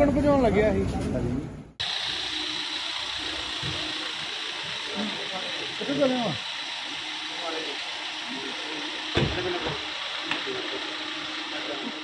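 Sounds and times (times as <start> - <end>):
street noise hiss: 0.8 - 12.0.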